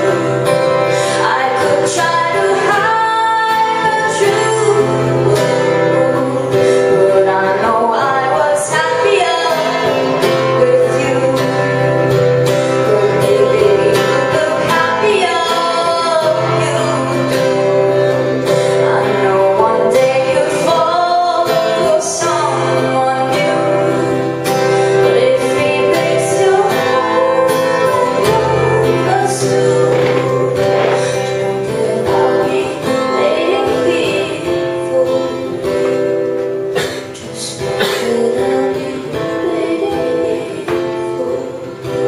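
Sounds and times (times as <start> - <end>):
acoustic guitar: 0.0 - 42.0
woman singing a pop ballad: 0.0 - 42.0.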